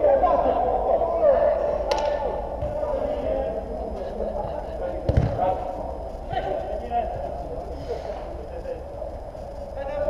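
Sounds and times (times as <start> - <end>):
football thudding: 5.1 - 5.5.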